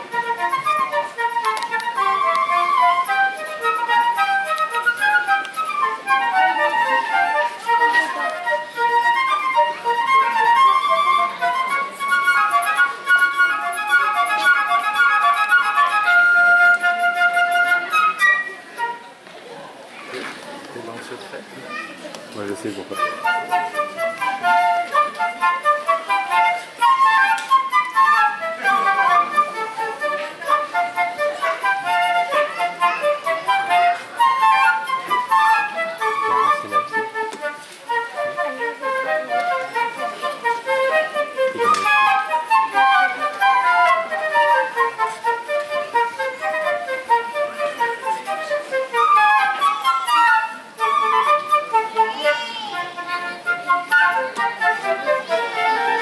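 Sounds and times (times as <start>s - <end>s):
flute duet: 0.0s - 19.7s, 22.4s - 56.0s.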